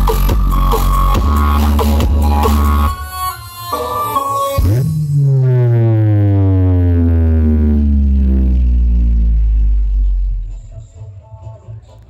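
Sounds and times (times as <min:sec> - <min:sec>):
deep electronic bass note: 0:04.6 - 0:11.0.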